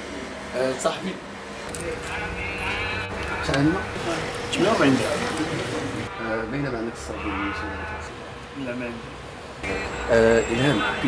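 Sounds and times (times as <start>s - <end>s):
people talking: 10.1s - 11.0s.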